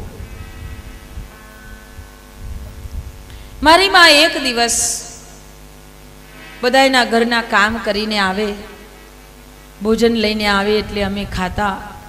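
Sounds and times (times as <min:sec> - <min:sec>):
drone of held tones: 0:00.0 - 0:09.9.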